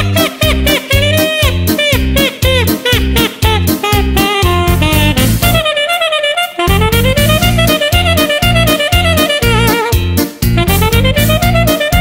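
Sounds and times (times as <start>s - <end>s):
oom-pah bass and chords: 0.0s - 12.0s
saxophone melody: 0.0s - 12.0s.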